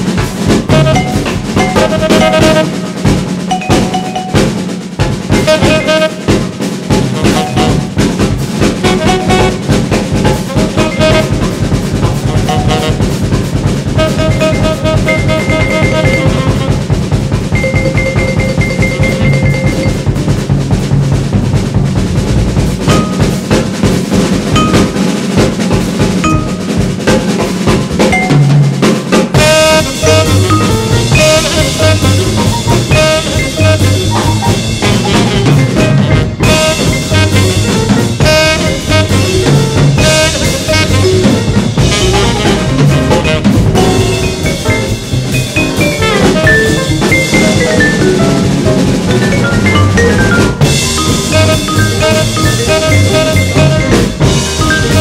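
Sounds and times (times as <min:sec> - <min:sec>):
swing jazz drum kit: 0:00.0 - 0:55.0
pitched notes ringing: 0:03.5 - 0:04.7, 0:17.6 - 0:20.2, 0:28.1 - 0:28.7, 0:43.3 - 0:55.0.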